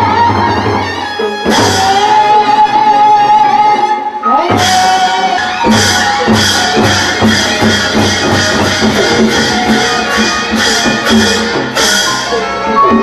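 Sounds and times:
drums and cymbals beat: 0:00.0 - 0:03.2, 0:04.3 - 0:13.0.

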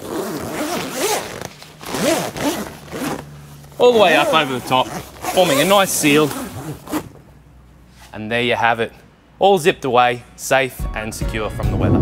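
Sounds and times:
long zip being pulled: 0:00.0 - 0:03.3, 0:04.1 - 0:07.1.

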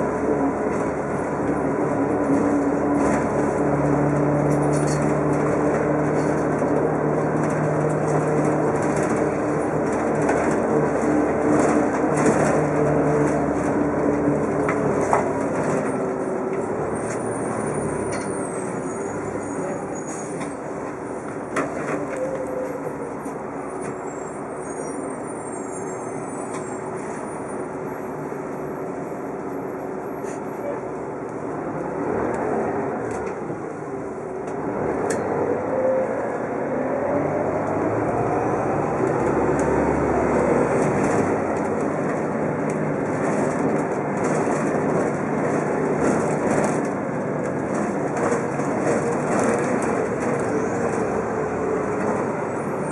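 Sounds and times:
bus engine running: 0:00.0 - 0:52.9
road noise: 0:00.0 - 0:52.9.

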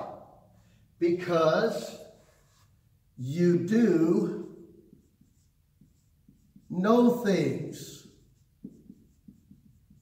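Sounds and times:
marker writing on whiteboard: 0:01.8 - 0:03.0, 0:03.7 - 0:10.0.

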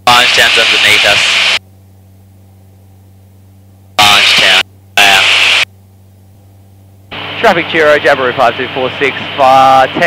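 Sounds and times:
light aircraft engine drone: 0:00.0 - 0:10.0
voice bursts over intercom: 0:04.0 - 0:05.4.

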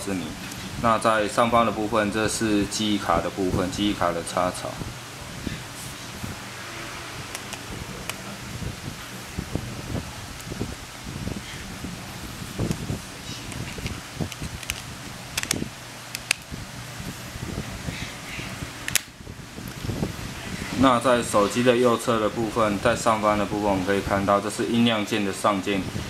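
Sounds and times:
phone cover clicking into place: 0:15.4 - 0:16.5.

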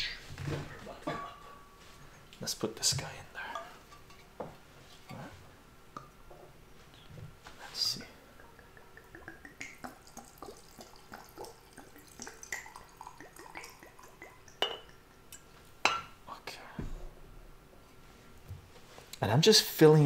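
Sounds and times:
liquid glugging into glass jar: 0:08.4 - 0:15.0.

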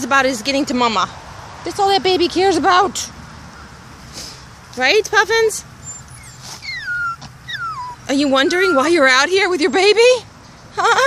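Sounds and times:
small dog whimpering: 0:05.8 - 0:09.1.

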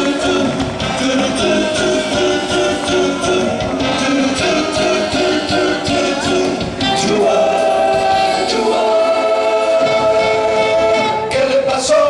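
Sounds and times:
live band music: 0:00.0 - 0:12.0
voices singing together: 0:00.0 - 0:12.0.

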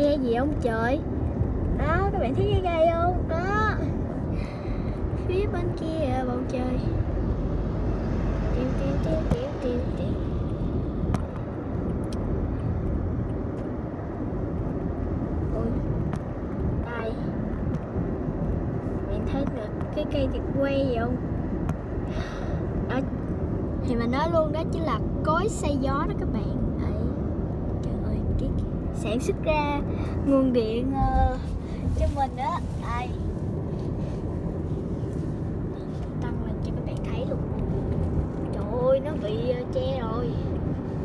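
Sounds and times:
car road and engine noise: 0:00.0 - 0:41.0.

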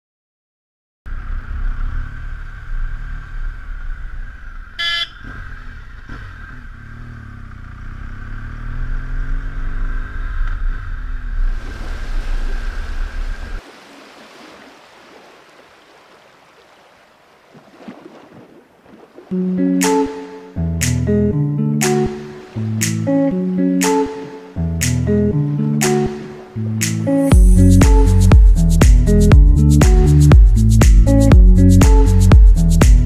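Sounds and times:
motorcycle engine running: 0:01.1 - 0:11.4, 0:27.3 - 0:33.0
short horn toot: 0:04.8 - 0:05.4.

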